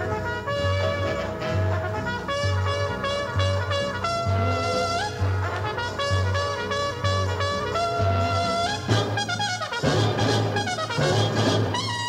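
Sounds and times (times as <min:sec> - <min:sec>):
concert band accompaniment: 0:00.0 - 0:12.0
solo trumpet: 0:00.0 - 0:12.0.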